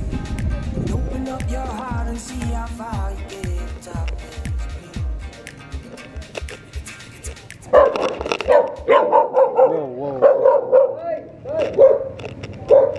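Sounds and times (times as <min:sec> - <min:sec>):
background music with a beat: 0:00.0 - 0:09.2
dog barking and howling: 0:07.7 - 0:11.0, 0:11.8 - 0:12.9.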